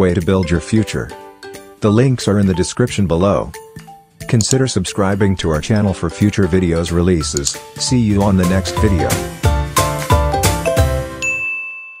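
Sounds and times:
music closing chords: 5.8 - 11.4
bright bell ding: 11.2 - 12.0.

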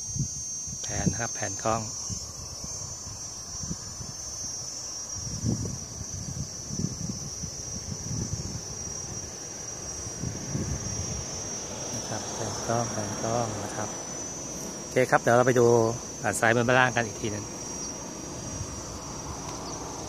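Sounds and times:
high-pitched insect drone: 0.0 - 20.0
wind buffeting microphone: 1.9 - 20.0.

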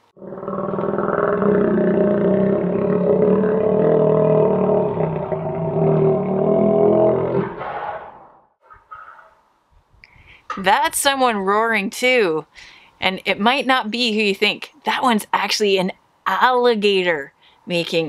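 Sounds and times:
alligator roaring: 0.1 - 8.4.

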